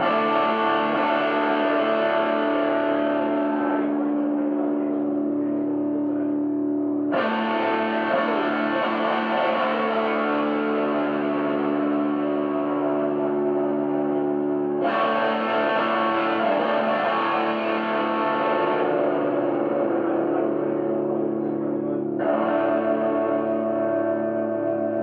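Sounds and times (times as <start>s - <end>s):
distorted electric guitar chords: 0.0s - 25.0s.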